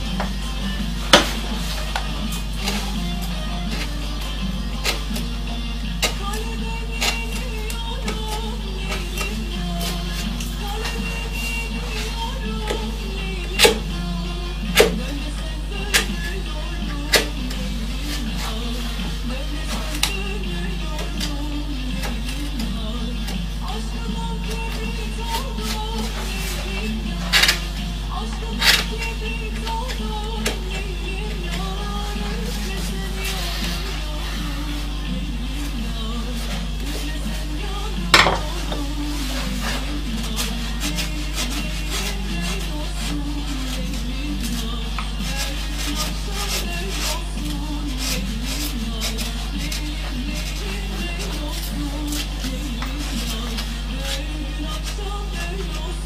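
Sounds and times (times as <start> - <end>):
background music: 0.0 - 56.0
steady low hum: 0.0 - 56.0.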